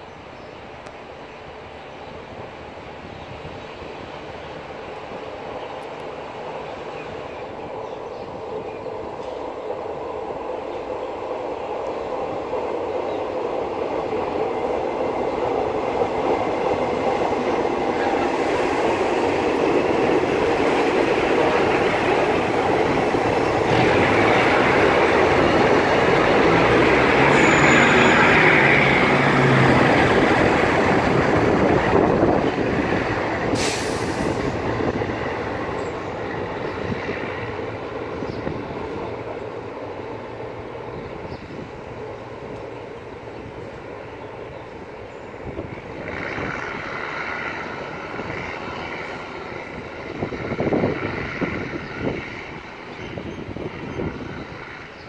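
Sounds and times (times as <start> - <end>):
diesel train engines: 0.0 - 55.0
steel wheels on rails: 15.7 - 40.1
high wheel squeal: 27.1 - 29.6.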